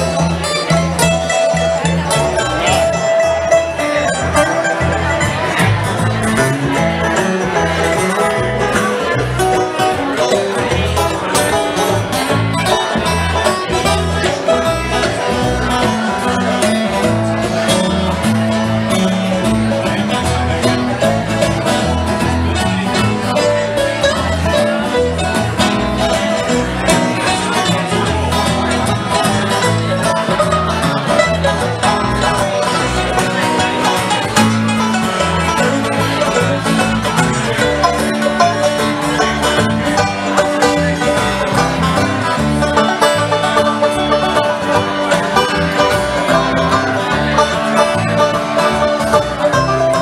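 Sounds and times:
banjo picking quick rolls: 0.0s - 50.0s
plucked upright bass: 0.0s - 50.0s
strummed acoustic guitar: 0.0s - 50.0s.

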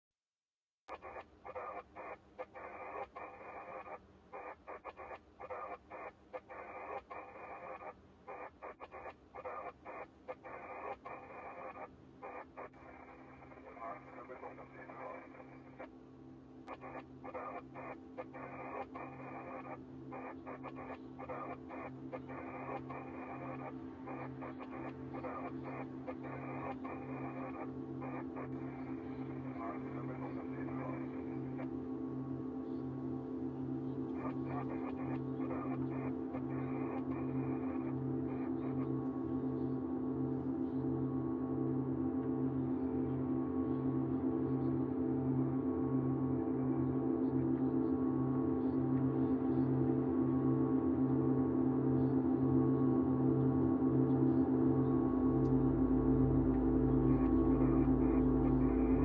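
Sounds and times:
choppy bursts of radio static: 0.9s - 15.9s, 16.7s - 31.8s, 34.0s - 39.0s, 57.0s - 59.0s
low steady hum: 9.8s - 59.0s
faint low drone: 10.6s - 59.0s.

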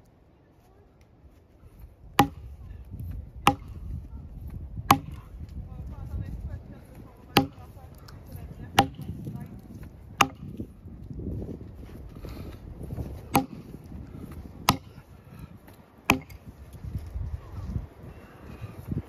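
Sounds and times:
axe striking a log: 2.1s - 2.6s, 3.4s - 4.0s, 4.8s - 5.4s, 7.3s - 8.0s, 8.7s - 9.3s, 10.2s - 10.7s, 13.2s - 13.8s, 14.6s - 15.0s, 16.1s - 16.5s.

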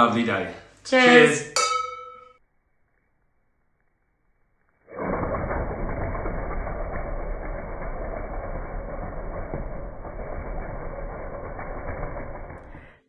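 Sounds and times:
air escaping from balloon: 4.8s - 13.0s.

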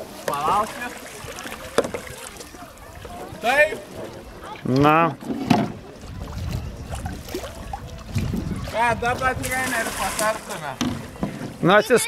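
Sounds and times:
wind rumble on microphone: 5.5s - 11.6s.

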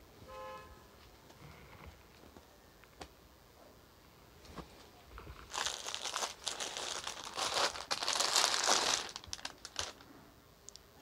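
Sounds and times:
plastic packaging crinkling: 5.4s - 10.1s.

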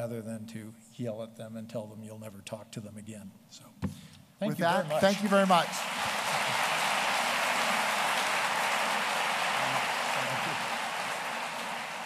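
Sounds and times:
audience applauding: 4.6s - 12.0s.

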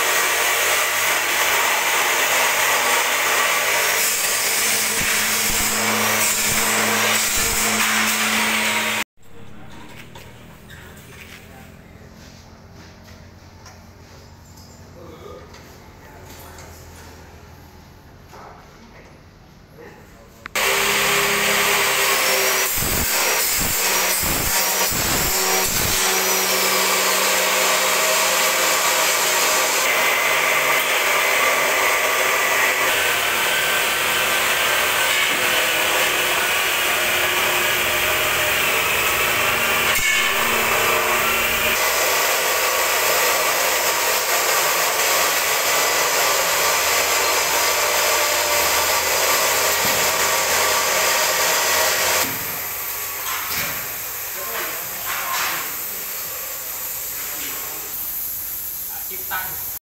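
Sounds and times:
power tool working steel: 0.0s - 11.5s, 20.5s - 58.0s.

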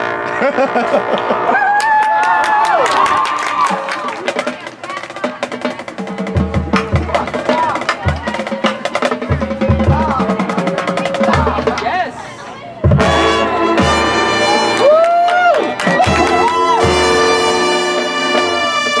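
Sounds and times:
marching band playing: 0.0s - 1.8s, 2.9s - 19.0s.

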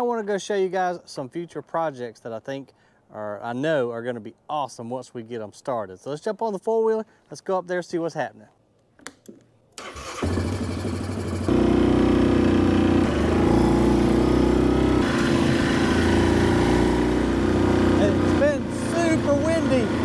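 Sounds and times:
quad bike engine starting and running: 9.8s - 20.0s.

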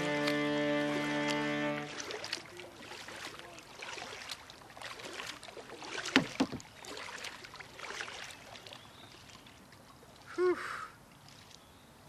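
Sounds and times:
background music chords: 0.0s - 2.0s
paddle strokes in water: 0.0s - 10.4s, 11.0s - 12.0s
water dripping and splashing: 0.0s - 10.4s, 11.0s - 11.8s.

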